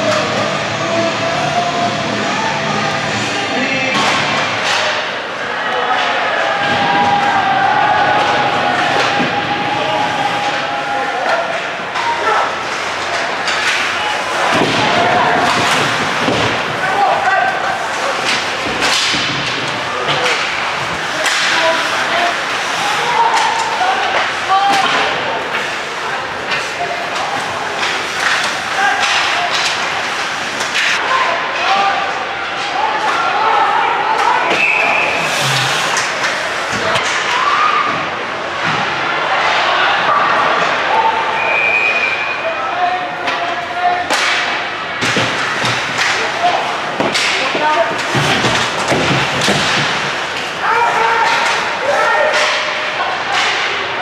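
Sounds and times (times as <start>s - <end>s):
players and crowd shouting: 0.0s - 54.0s
hockey sticks clattering: 3.6s - 7.4s, 8.1s - 33.4s, 34.0s - 38.0s, 43.1s - 54.0s
puck and players slamming boards: 3.9s - 5.1s, 6.0s - 10.6s, 11.2s - 33.3s, 34.2s - 38.9s, 43.2s - 54.0s.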